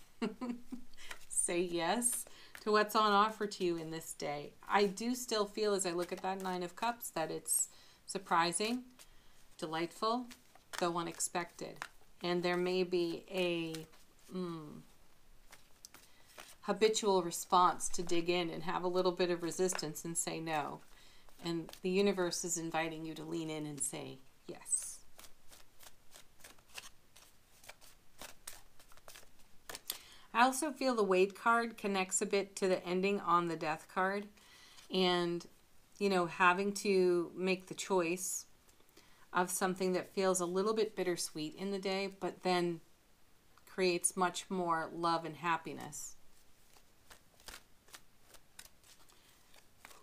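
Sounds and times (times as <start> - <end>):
cards being shuffled: 0.6 - 7.5, 8.2 - 24.0, 24.6 - 30.1, 45.8 - 50.0.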